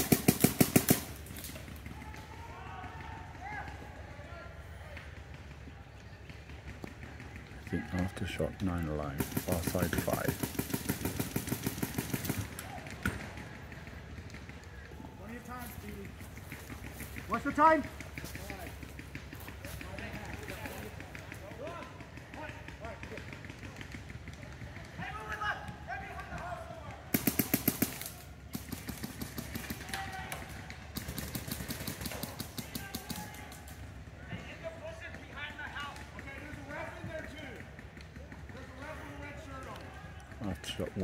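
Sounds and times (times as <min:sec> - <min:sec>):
paintball markers firing: 0:00.0 - 0:03.8, 0:04.9 - 0:41.0
distant players shouting: 0:00.0 - 0:41.0.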